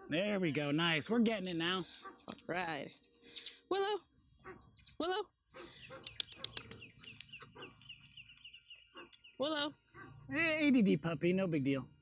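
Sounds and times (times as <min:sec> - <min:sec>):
bird chirping rapidly: 0:03.3 - 0:03.7, 0:04.4 - 0:11.3
sharp clicks: 0:06.0 - 0:07.3.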